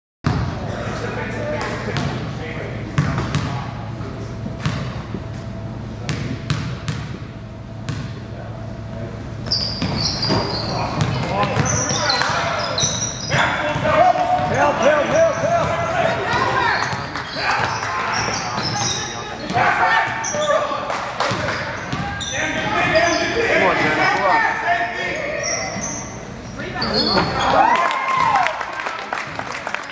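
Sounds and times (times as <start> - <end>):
sneaker squeaks: 9.4 - 24.2, 25.1 - 27.7
basketball bouncing on wooden floor: 9.8 - 12.0.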